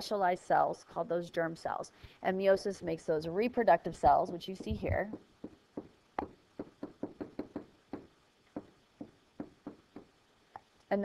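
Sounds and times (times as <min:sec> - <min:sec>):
stylus tapping on touchscreen: 0:04.1 - 0:10.1.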